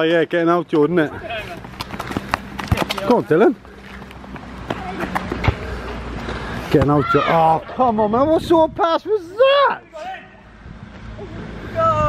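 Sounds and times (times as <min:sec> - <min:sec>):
football kicked on asphalt: 0:01.6 - 0:05.7.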